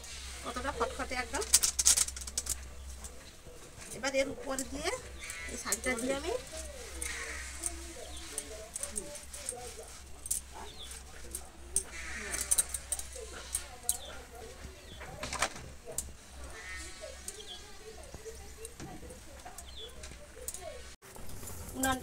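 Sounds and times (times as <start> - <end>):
animal calling: 4.6 - 9.9, 10.5 - 15.2, 16.3 - 18.8.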